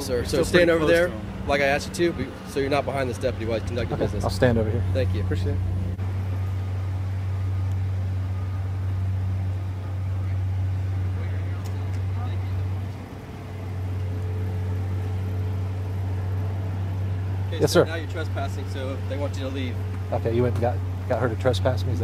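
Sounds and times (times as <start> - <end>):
vehicle engine idling: 0.0 - 22.0.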